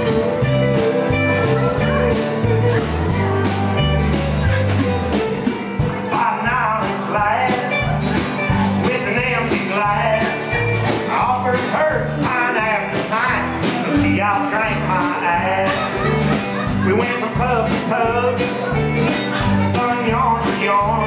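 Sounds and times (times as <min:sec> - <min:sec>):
bass guitar: 0:00.0 - 0:21.0
drums: 0:00.0 - 0:21.0
electric and acoustic guitars: 0:00.0 - 0:21.0.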